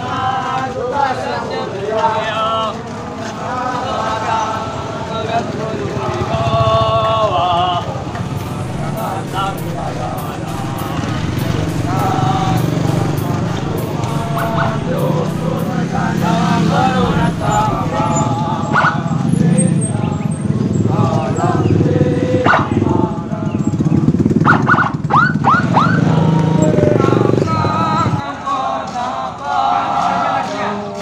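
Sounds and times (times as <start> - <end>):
marching soldiers voices: 0.0 - 24.3, 25.8 - 31.0
car and motorcycle engines: 4.1 - 28.3
sharp sounds: 8.2 - 19.2.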